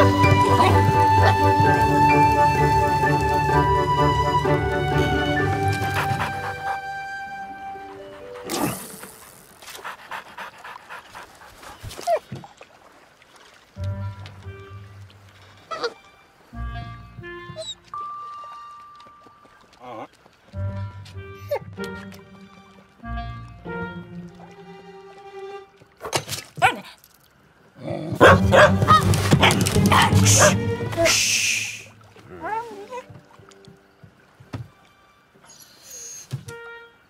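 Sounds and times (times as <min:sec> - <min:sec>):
soft music: 0:00.0 - 0:09.4, 0:13.6 - 0:26.0, 0:28.2 - 0:37.0.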